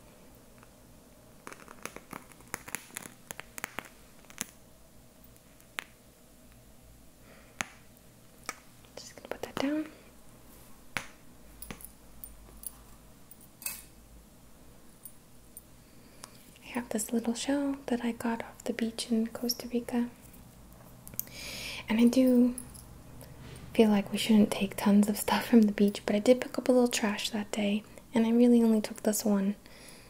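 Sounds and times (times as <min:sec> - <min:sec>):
burning match crackling and popping: 0:01.4 - 0:04.6.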